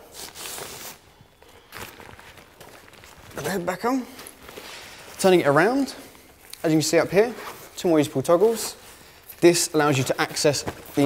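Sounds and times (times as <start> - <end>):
rucksack fabric rustling: 0.0 - 11.0.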